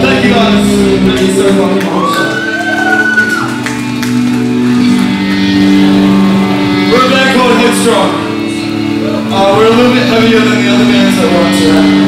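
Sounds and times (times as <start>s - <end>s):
electric guitar sustained chords: 0.0s - 12.0s
live heavy band playing: 0.0s - 12.0s.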